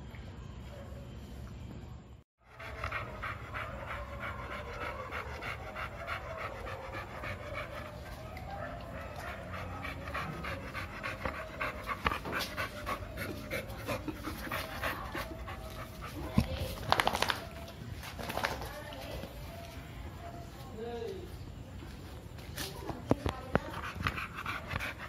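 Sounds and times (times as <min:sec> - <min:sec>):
dog panting: 0:02.4 - 0:17.7, 0:23.3 - 0:25.0.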